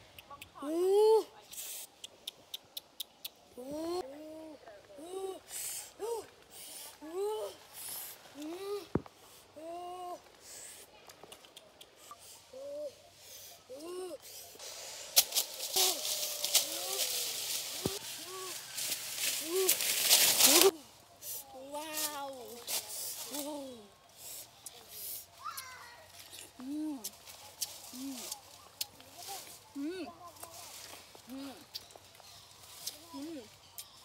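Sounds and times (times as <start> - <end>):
leaves rustling: 14.4 - 34.0
twigs snapping: 15.1 - 18.0, 18.7 - 20.8.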